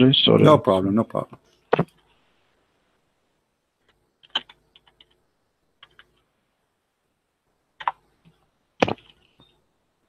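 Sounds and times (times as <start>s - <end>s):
keyboard typing: 3.8s - 5.2s, 5.8s - 6.2s, 7.8s - 9.6s.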